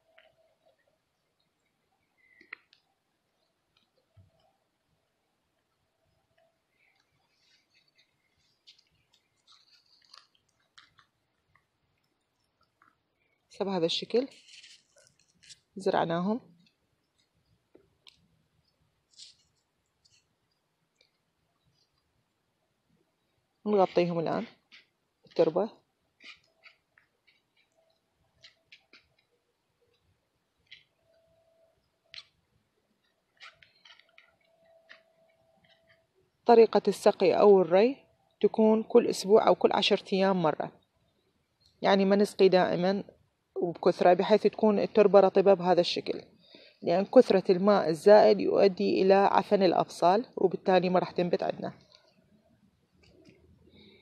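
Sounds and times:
small clicks: 0.1 - 4.5, 6.3 - 13.4, 33.0 - 36.1
fingers crunching potting soil: 6.9 - 11.6
fingers scratching soil: 14.1 - 15.7, 26.2 - 27.8, 33.2 - 37.8.

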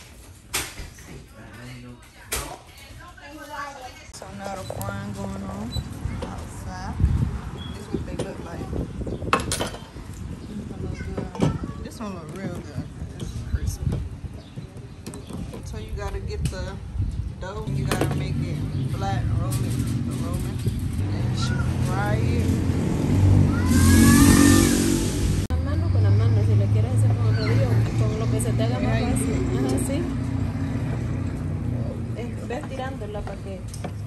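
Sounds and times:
voices talking: 1.4 - 34.0
rush of noise: 22.6 - 25.6.

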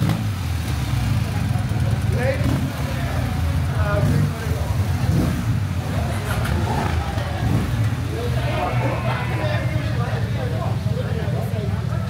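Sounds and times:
motorcycle engine idling: 0.0 - 12.0
people talking in background: 0.0 - 12.0.

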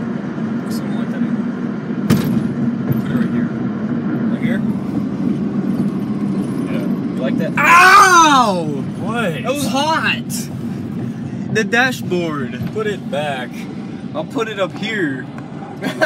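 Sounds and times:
car cabin road and engine noise: 0.0 - 16.0
person crying out loudly: 7.6 - 8.7.

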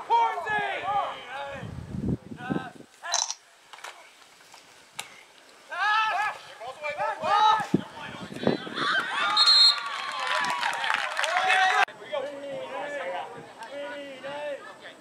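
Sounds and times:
crowd shouting and cheering: 5.8 - 11.9
referee's whistle: 9.3 - 9.9.

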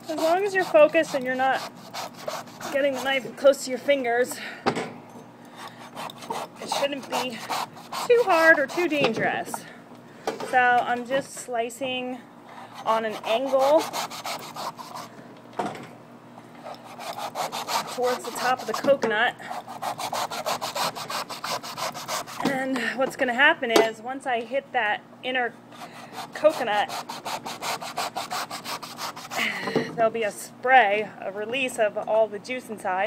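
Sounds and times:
knife sawing through coconut husk: 0.0 - 3.3, 5.8 - 9.0, 12.7 - 15.1, 16.8 - 22.4, 25.8 - 29.5.

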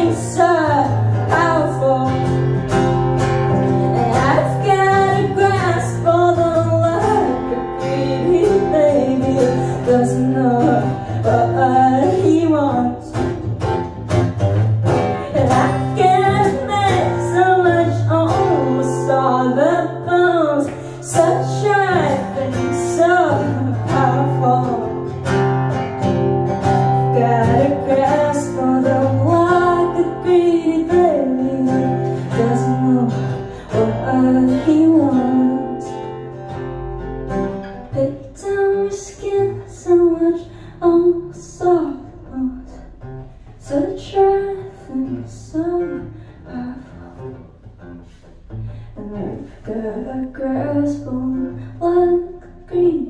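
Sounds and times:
woman singing: 0.0 - 14.2, 14.9 - 36.6, 37.8 - 47.5, 48.8 - 53.0
strummed acoustic guitar: 0.0 - 53.0.

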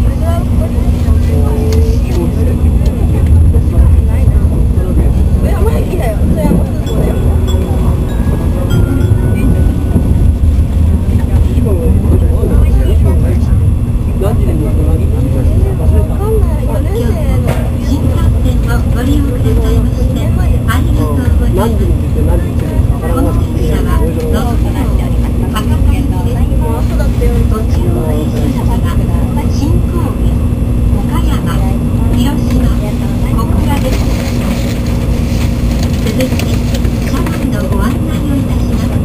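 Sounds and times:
train running rumble inside cabin: 0.0 - 39.0.

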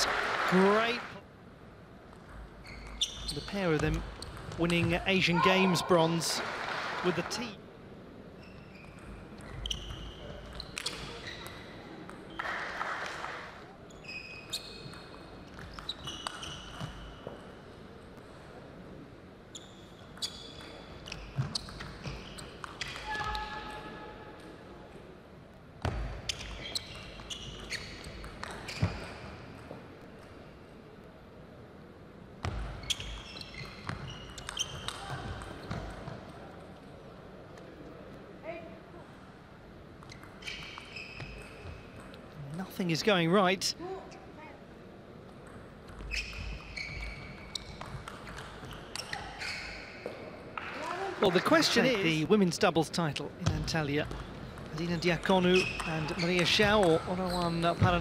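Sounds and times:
shoes squeaking on floor: 2.6 - 5.0, 8.4 - 11.8, 13.9 - 17.4, 19.5 - 23.6, 26.3 - 29.4, 32.7 - 35.8, 40.1 - 42.0, 46.0 - 50.3, 54.0 - 58.0.

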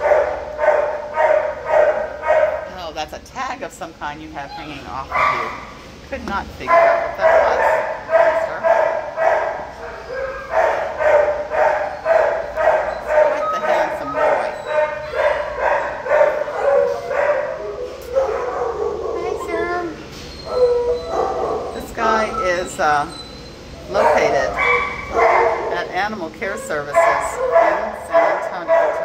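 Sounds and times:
dog barking: 0.0 - 2.7, 5.1 - 5.7, 6.7 - 19.8, 20.5 - 22.5, 23.9 - 26.0, 26.9 - 29.0
dog yelping: 0.0 - 2.7, 4.4 - 5.7, 6.6 - 29.0.

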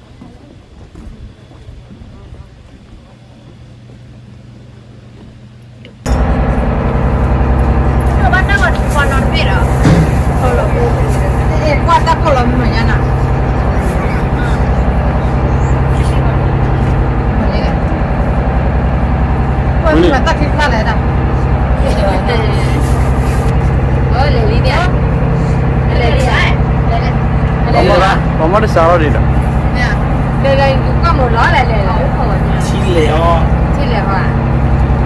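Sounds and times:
boat engine running: 0.0 - 35.0
people talking: 8.1 - 18.0, 19.8 - 25.0, 25.8 - 34.4.

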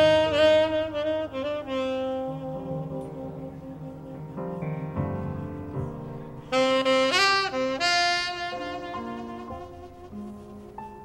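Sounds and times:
saxophone playing held notes: 0.0 - 10.8
jazz band playing: 0.0 - 11.0.

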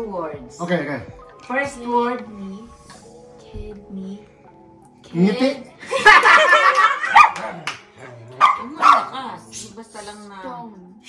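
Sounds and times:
small dog barking: 7.0 - 7.6, 8.3 - 9.2.

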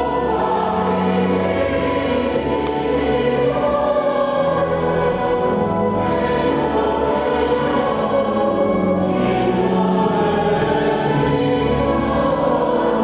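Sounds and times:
church choir singing: 0.0 - 13.0.

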